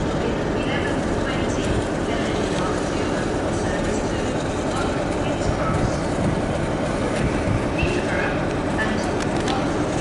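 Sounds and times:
diesel locomotive engine running: 0:00.0 - 0:10.0.

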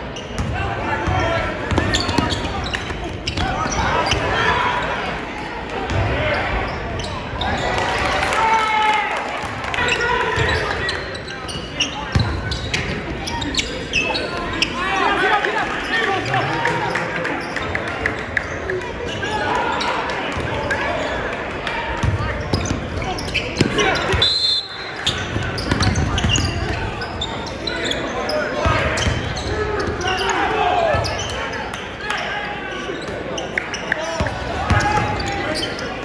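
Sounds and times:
crowd chatter and shouts: 0:00.0 - 0:36.0.

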